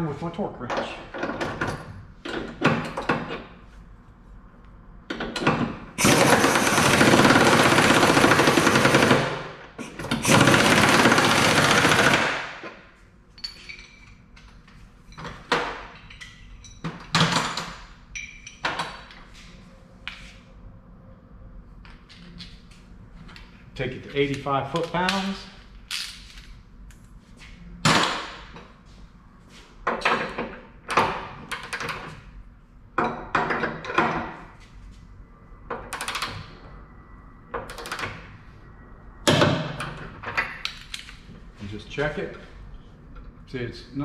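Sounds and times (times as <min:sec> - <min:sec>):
pneumatic air tool rattling: 0:06.0 - 0:09.2, 0:09.8 - 0:12.3.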